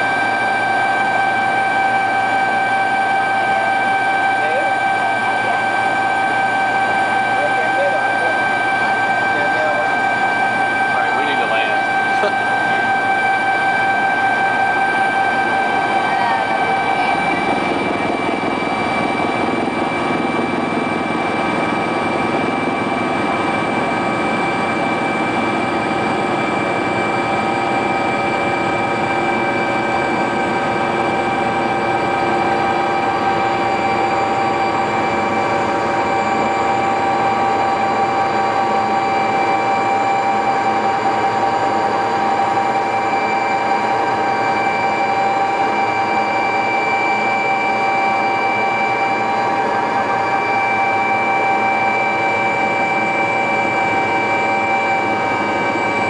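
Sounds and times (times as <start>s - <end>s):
helicopter cabin drone: 0.0s - 56.0s
machinery whining tones: 0.0s - 56.0s.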